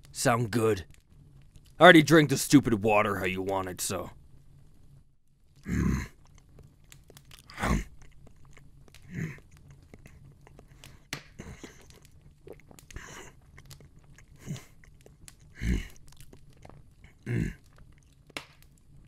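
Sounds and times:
person chewing and biting meat: 6.1 - 18.8.

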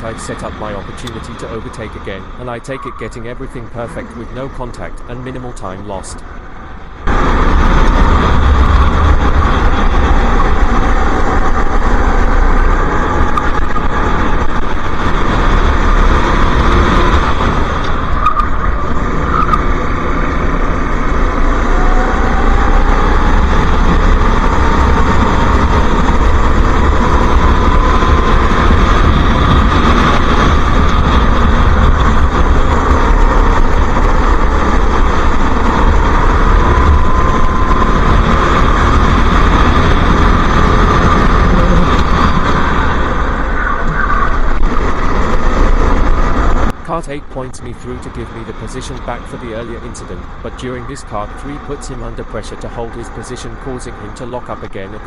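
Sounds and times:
wind rumble on microphone: 6.2 - 46.9
kart engine running hard: 7.1 - 46.7.

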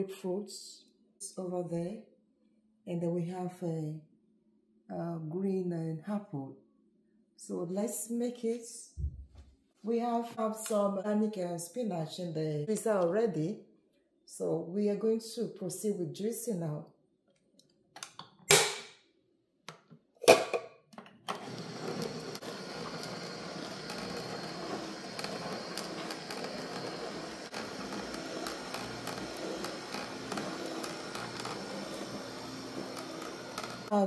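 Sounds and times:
juicer motor hum: 21.2 - 34.0.

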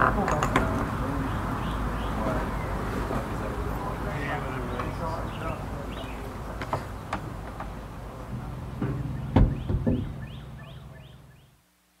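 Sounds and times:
scattered knocks: 6.6 - 10.6
steady low hum: 7.9 - 11.6.

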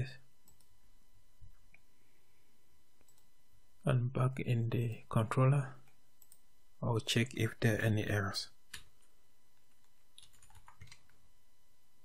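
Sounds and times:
low room hiss: 0.0 - 12.0
keyboard and mouse clicks: 8.7 - 11.2.

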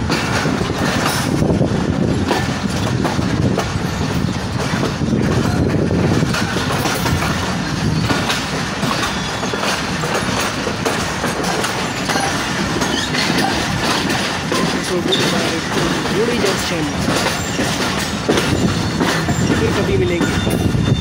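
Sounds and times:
train coach rumble: 0.0 - 21.0
wheels clattering over rail joints: 0.0 - 21.0.

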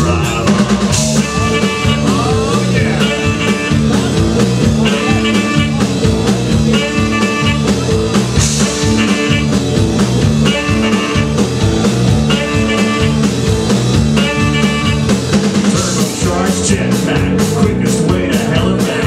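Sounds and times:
rockabilly band playing: 0.0 - 19.0.

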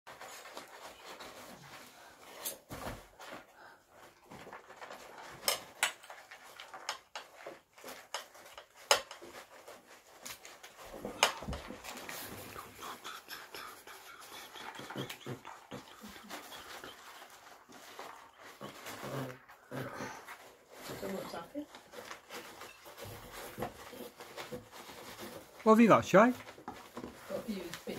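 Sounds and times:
dog rummaging and eating: 0.1 - 27.9
paper and cardboard rustling: 0.1 - 27.9.

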